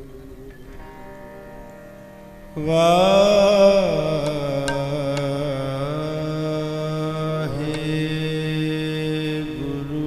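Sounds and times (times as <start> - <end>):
harmonium notes: 0.0 - 10.0
man singing: 2.6 - 10.0.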